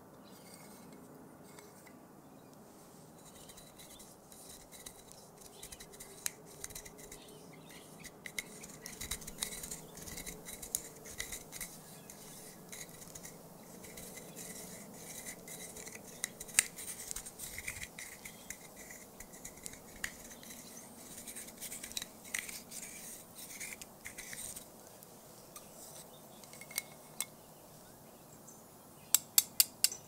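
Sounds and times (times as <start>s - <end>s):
scratching and tapping on hard object: 3.2s - 24.7s
sharp click: 29.1s - 30.0s.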